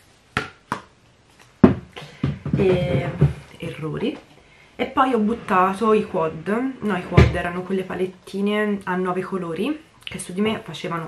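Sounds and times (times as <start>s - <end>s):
makeup items knocking: 1.6s - 3.5s.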